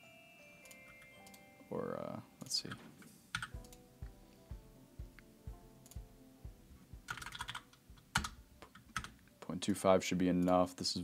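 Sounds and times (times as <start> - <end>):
faint background music: 0.0 - 11.0
computer keyboard typing: 3.3 - 3.8, 7.1 - 9.2.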